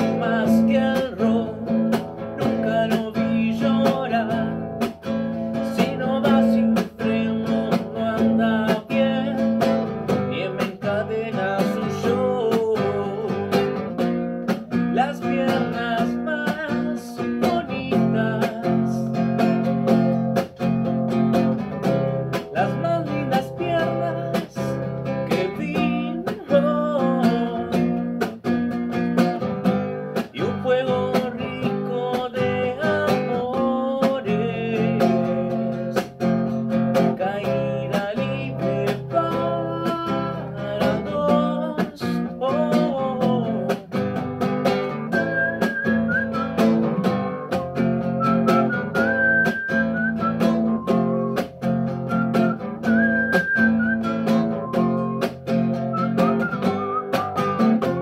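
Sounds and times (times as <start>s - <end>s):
man singing: 0.0s - 20.5s, 21.3s - 28.4s, 29.4s - 47.2s, 48.2s - 58.0s
acoustic guitar strumming: 0.0s - 58.0s.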